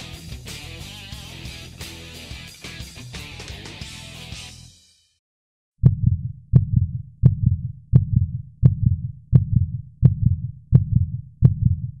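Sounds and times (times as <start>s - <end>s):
heartbeat thumps: 5.8s - 12.0s.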